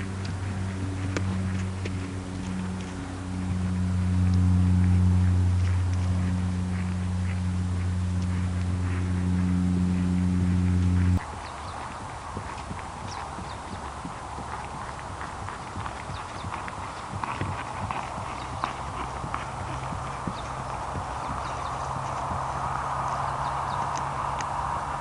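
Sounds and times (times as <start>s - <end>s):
pony hoofbeats on dry grass: 0.0s - 25.0s.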